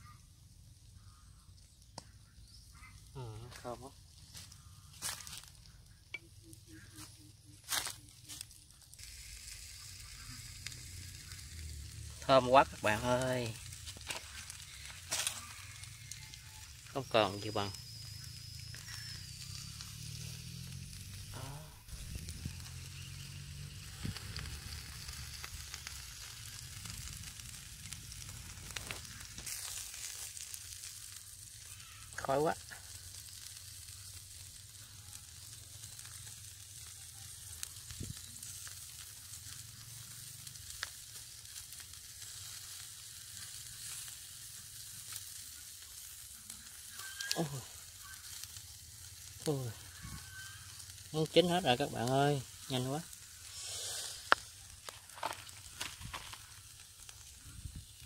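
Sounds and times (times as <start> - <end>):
skewers sizzling on grill: 0.0 - 58.0.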